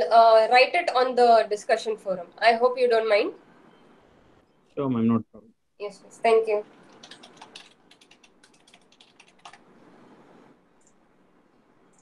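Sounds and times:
computer keyboard typing: 6.7 - 9.7.

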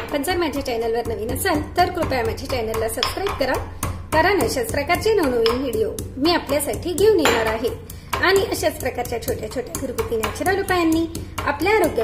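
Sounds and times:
stone pestle pounding in mortar: 0.0 - 12.0.

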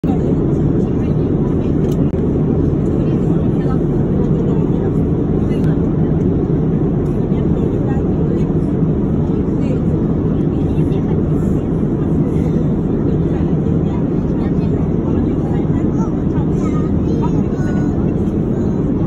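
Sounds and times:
airliner cabin rumble: 0.0 - 19.0.

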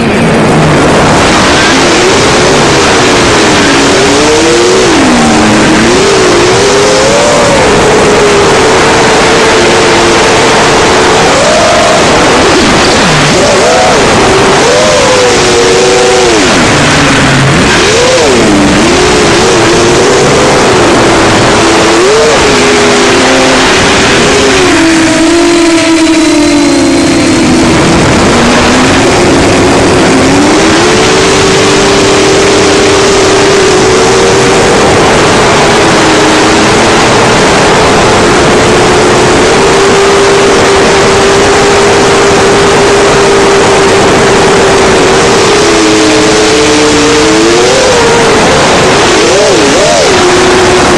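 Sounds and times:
drone motors buzzing whine: 0.0 - 50.9
wind and prop-wash noise: 0.0 - 50.9.

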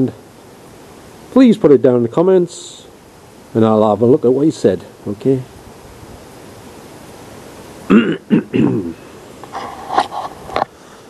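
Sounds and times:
sharp throat clicks: 7.9 - 9.0
short voiced grunts: 7.9 - 9.0
man clearing throat and coughing: 7.9 - 9.1.

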